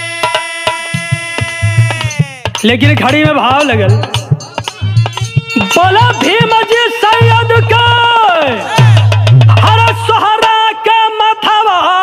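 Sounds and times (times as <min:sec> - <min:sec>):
person singing folk song: 0:00.0 - 0:02.7
hand-drum beats: 0:00.0 - 0:10.7
sharp clicking percussion: 0:00.0 - 0:10.8.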